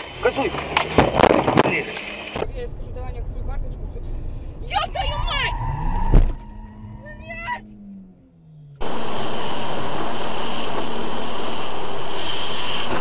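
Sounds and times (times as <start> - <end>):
voices in car: 0.0 - 8.3
car engine running: 0.0 - 13.0
car crash impact: 0.5 - 2.0.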